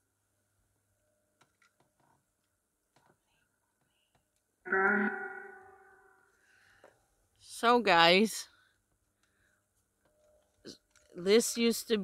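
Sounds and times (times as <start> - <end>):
steady musical tone: 4.7 - 6.3.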